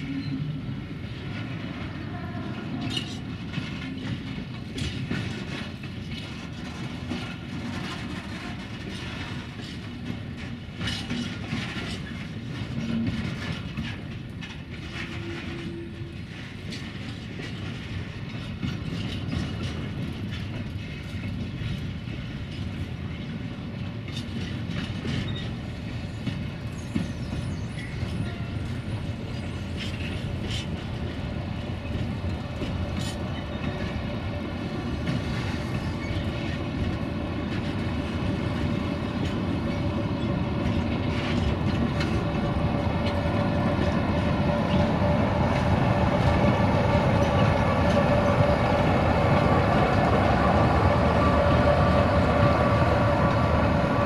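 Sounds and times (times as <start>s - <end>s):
diesel locomotive engine whine: 0.0s - 54.0s
freight wagons clickety-clack: 1.2s - 50.0s.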